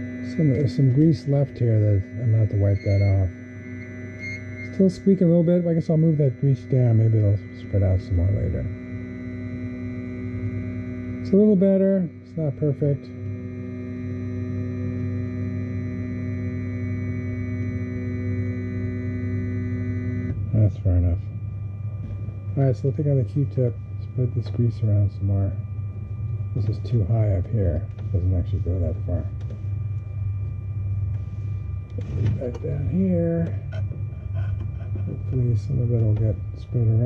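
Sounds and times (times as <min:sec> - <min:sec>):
stepper motor hum and whine: 0:00.0 - 0:37.0.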